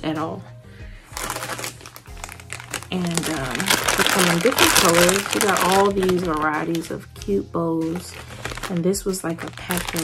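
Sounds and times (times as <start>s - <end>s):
quiet background music: 0.0s - 10.0s
plastic bag crinkling: 1.0s - 10.0s.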